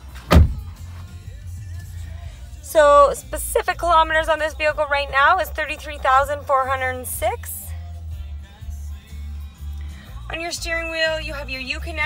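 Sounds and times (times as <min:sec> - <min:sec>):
truck engine idling: 0:00.0 - 0:12.0
heavy thump: 0:00.2 - 0:00.8.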